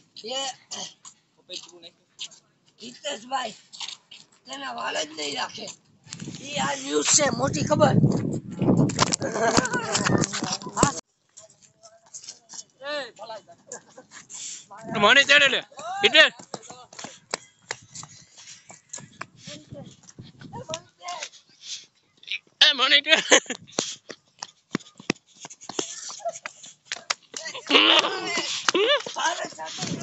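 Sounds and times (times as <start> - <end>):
running footsteps on hard ground: 6.2 - 11.0, 14.9 - 21.5, 23.4 - 30.0
young men shouting and hooting: 14.8 - 16.4.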